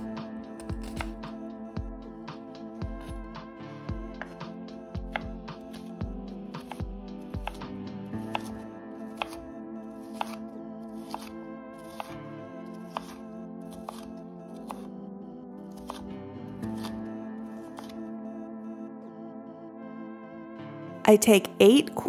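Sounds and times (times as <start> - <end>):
background music sustained tones: 0.0 - 22.0
knife chopping on cutting board: 0.7 - 1.4, 4.1 - 5.9, 6.6 - 8.6, 9.2 - 9.4, 10.1 - 10.4, 11.0 - 12.2, 12.9 - 14.9, 15.7 - 16.0, 16.7 - 17.0, 17.7 - 18.0.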